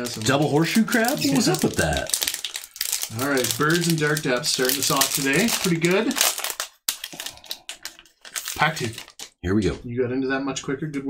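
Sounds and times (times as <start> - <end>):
foil wrapper crinkling: 0.0 - 9.4.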